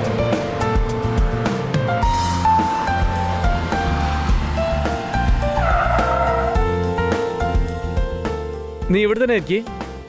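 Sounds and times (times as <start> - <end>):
car tyres squealing: 3.2 - 6.9.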